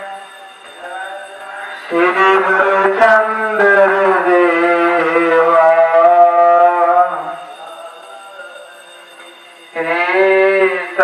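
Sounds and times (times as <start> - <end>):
person chanting devotional music: 0.0 - 11.0.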